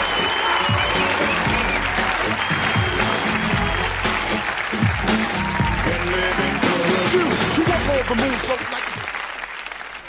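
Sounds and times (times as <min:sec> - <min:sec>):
audience applauding and cheering: 0:00.0 - 0:10.0.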